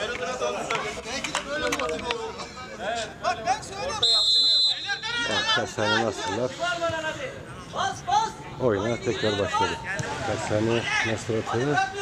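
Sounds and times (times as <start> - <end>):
men talking and calling out: 0.0 - 12.0.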